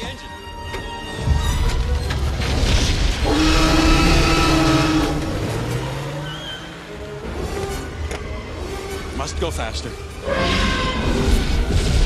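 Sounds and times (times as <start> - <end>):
orchestral film score: 0.0 - 12.0
engine revving hard: 3.3 - 5.9.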